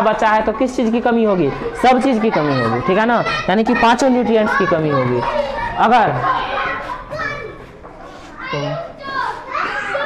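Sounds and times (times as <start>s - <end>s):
children talking and calling: 0.0s - 10.0s.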